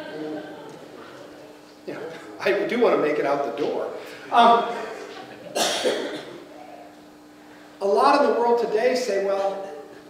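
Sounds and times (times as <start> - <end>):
faint steady hum: 0.0 - 10.0
person coughing: 5.5 - 6.4.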